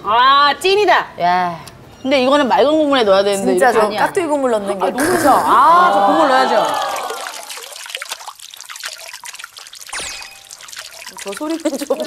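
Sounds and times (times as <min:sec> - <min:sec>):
liquid pouring into a bowl: 0:06.2 - 0:12.0.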